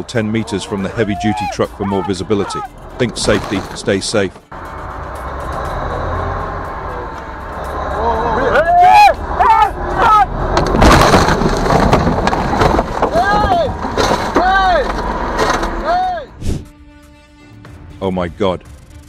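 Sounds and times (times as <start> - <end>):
metal crunching: 0.0 - 8.0, 9.2 - 16.2
low engine rumble: 0.0 - 16.4
person yelling: 0.4 - 2.7, 8.0 - 10.3, 13.1 - 14.9, 15.8 - 16.3
glass breaking: 10.6 - 14.7.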